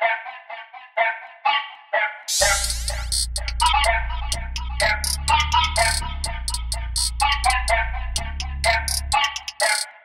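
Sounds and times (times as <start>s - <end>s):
quick hi-hats: 2.3s - 9.9s
plucked melody: 2.4s - 9.5s
sustained bass: 2.4s - 9.5s.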